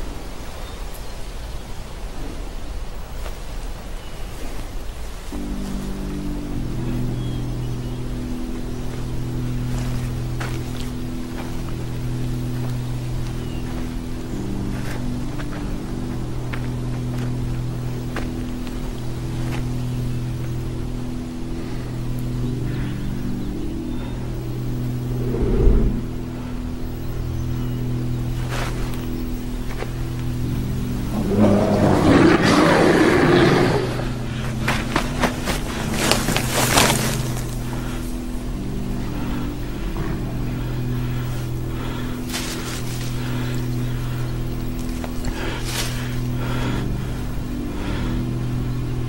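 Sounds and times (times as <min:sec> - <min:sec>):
suspenseful low drone: 0:05.3 - 0:49.0
rough noisy swell: 0:25.0 - 0:26.7
sudden low hit: 0:25.1 - 0:26.3.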